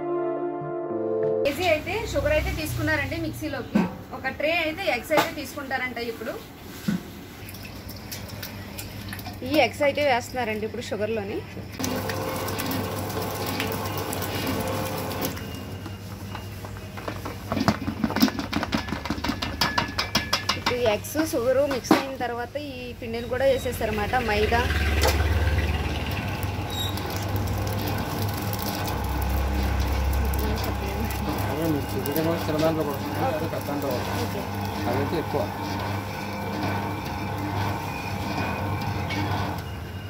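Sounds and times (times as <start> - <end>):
mixer motor hum: 11.8 - 15.4, 24.3 - 40.0.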